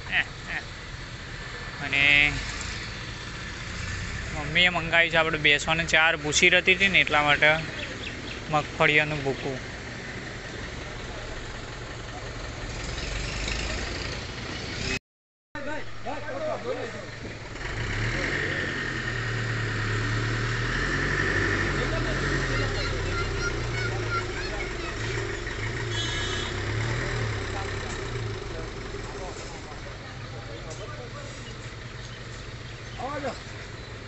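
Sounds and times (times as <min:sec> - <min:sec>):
truck diesel engine pulling away: 0:00.2 - 0:15.0, 0:16.0 - 0:34.0.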